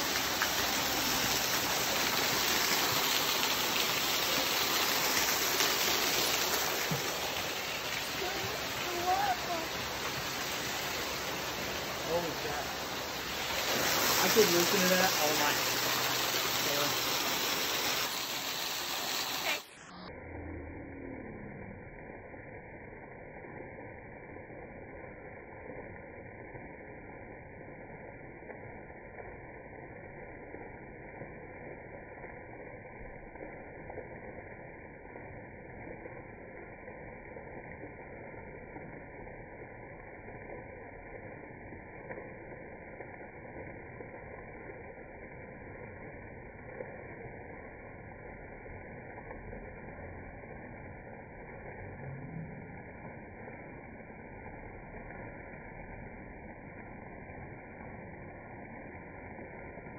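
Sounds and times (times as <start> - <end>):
waterfall rushing and splashing: 0.0 - 20.1.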